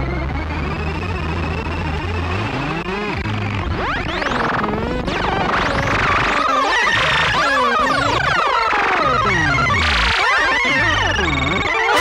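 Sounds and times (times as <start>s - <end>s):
chaotic electronic music: 0.4s - 12.0s.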